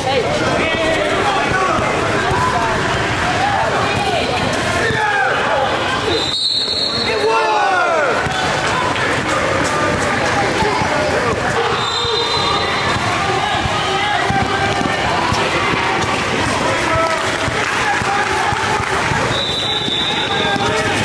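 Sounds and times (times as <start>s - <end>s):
players' voices: 0.0s - 21.0s
sneakers squeaking: 8.2s - 16.2s, 19.1s - 21.0s
basketball bouncing on court: 8.2s - 21.0s.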